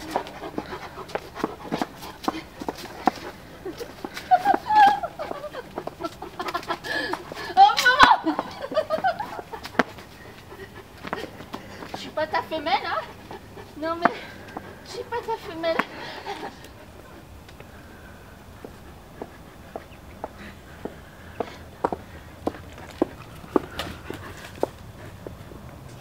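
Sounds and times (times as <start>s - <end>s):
dogs panting: 0.0s - 26.0s
woman's voice: 7.5s - 8.6s, 11.9s - 13.2s, 13.8s - 16.5s.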